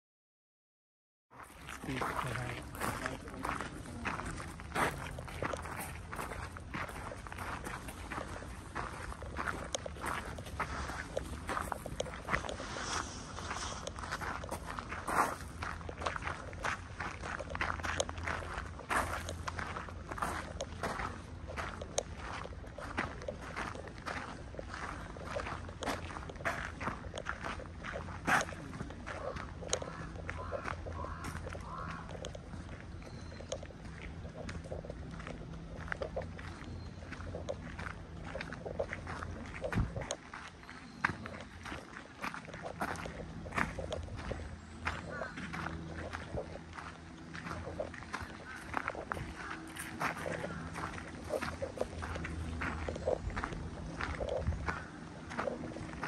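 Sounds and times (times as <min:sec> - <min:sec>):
footsteps crunching on gravel: 0:01.4 - 0:56.0.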